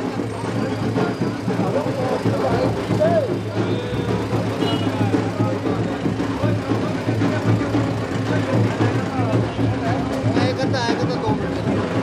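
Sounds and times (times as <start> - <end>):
many people talking: 0.0 - 12.0.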